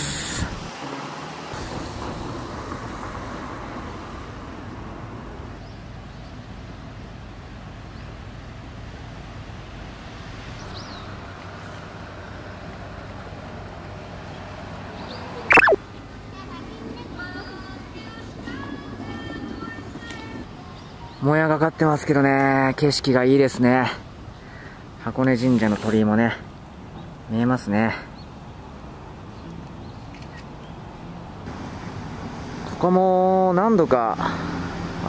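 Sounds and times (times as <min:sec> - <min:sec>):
distant traffic: 0:00.0 - 0:35.0
faint short chirp: 0:15.5 - 0:15.8
loud sound falling in pitch: 0:15.5 - 0:15.8.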